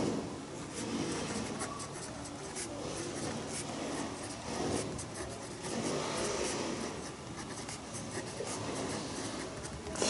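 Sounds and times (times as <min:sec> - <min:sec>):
pen scratching on paper: 0:00.0 - 0:10.0.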